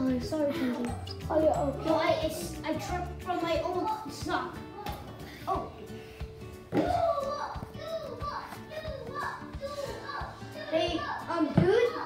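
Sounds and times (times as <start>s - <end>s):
children chattering: 0.0s - 5.9s, 6.8s - 12.0s
background music: 0.0s - 12.0s.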